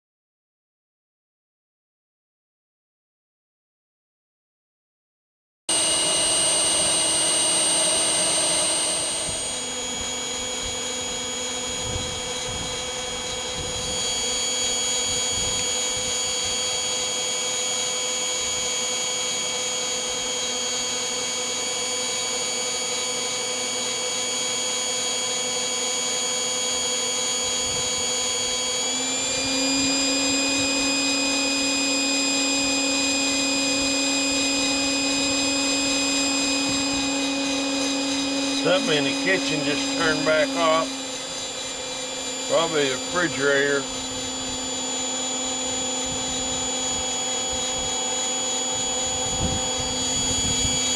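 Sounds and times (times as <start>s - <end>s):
blower motor whining: 5.7s - 50.9s.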